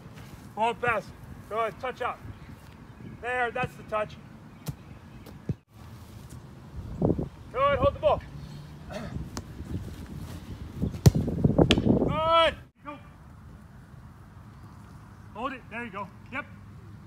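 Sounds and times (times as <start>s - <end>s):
balls kicked with thuds: 4.6s - 5.6s, 10.8s - 12.1s.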